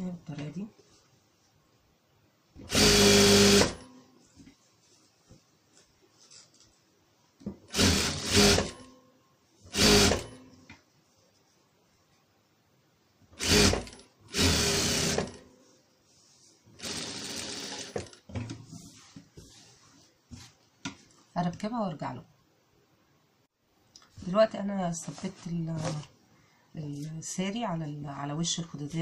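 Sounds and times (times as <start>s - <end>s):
electric sewing machine stitching: 2.7s - 3.9s, 7.7s - 8.8s, 9.7s - 10.3s, 13.4s - 15.4s, 16.8s - 18.1s.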